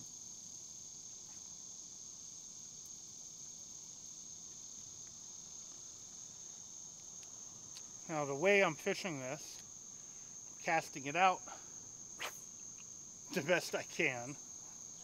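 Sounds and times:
insects chirping: 0:00.0 - 0:15.0.

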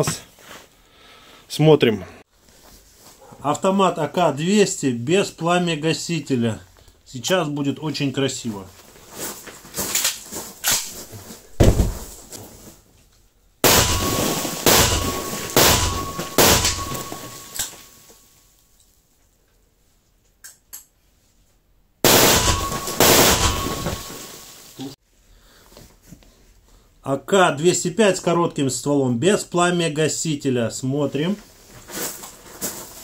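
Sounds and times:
rifle shots with room echo: 0:13.6 - 0:17.7, 0:22.0 - 0:24.4.

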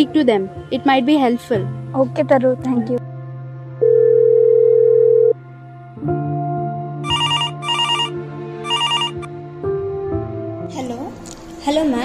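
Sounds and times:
soft background music: 0:00.0 - 0:12.0
telephone ringing electronic trill: 0:07.0 - 0:09.3.

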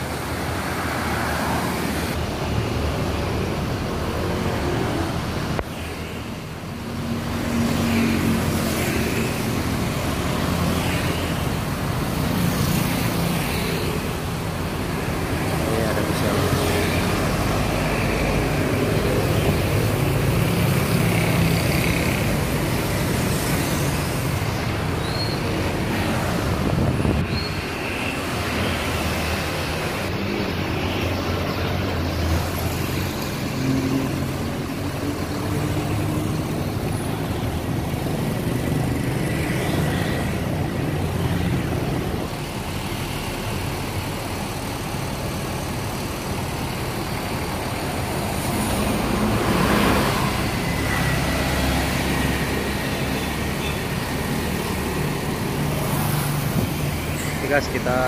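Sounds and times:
bus engines idling: 0:00.0 - 0:58.0
cars passing: 0:00.0 - 0:58.0
motorcycles passing: 0:06.1 - 0:42.6, 0:47.3 - 0:58.0.

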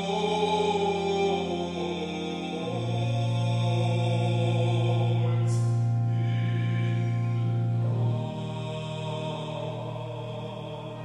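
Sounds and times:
baritone voice singing: 0:00.0 - 0:11.0
pipe organ sustained chord: 0:00.0 - 0:11.0.

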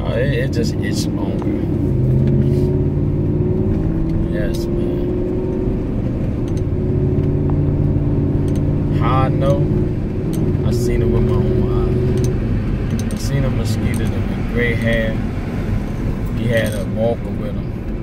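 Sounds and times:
man talking: 0:00.0 - 0:01.8, 0:04.2 - 0:05.2, 0:08.9 - 0:09.7, 0:10.6 - 0:12.1, 0:13.1 - 0:15.2, 0:16.3 - 0:17.7
road noise: 0:00.0 - 0:18.0
vehicle engine drone: 0:00.0 - 0:18.0.

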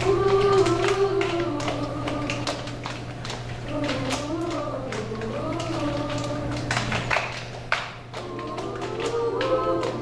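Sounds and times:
hand claps: 0:00.0 - 0:10.0
choir singing held notes: 0:08.1 - 0:10.0.

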